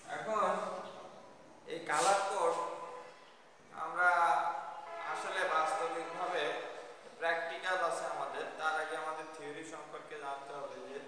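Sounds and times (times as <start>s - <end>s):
man lecturing: 0.0s - 1.1s, 1.7s - 3.1s, 3.7s - 11.0s.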